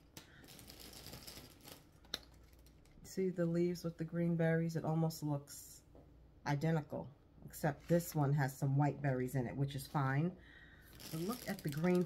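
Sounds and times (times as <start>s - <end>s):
artificial flowers rustling: 0.0s - 2.8s, 10.8s - 12.0s.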